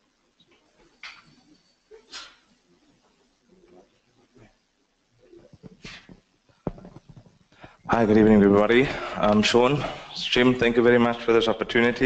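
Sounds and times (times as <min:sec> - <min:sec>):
man speaking: 0:07.9 - 0:12.0.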